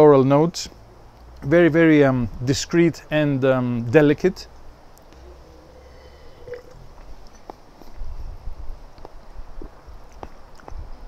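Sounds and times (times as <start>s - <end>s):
low rumble: 5.0s - 8.6s.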